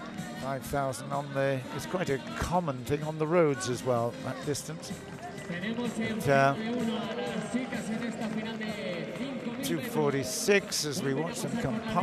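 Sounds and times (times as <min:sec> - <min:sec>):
crowd of spectators' voices: 0:00.0 - 0:12.0.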